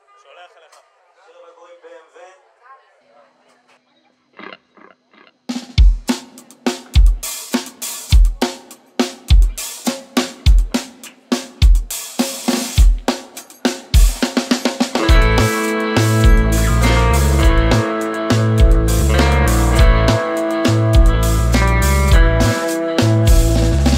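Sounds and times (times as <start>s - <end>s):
drum kit groove: 5.5s - 23.9s.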